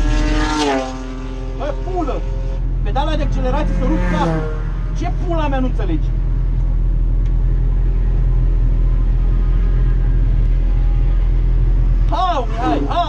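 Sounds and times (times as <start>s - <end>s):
race car engine droning: 0.0s - 13.0s.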